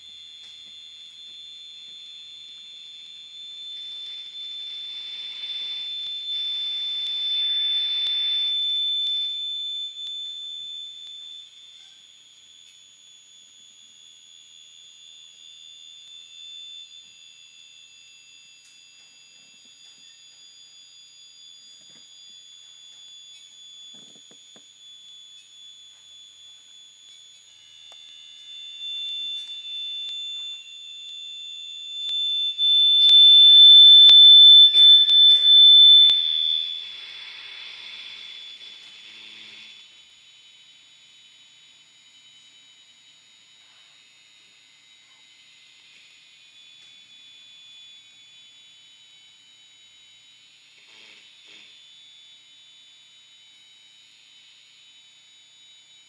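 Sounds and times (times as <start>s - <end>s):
piercing high electronic tone: 0.0s - 52.1s
hiss: 34.8s - 39.9s.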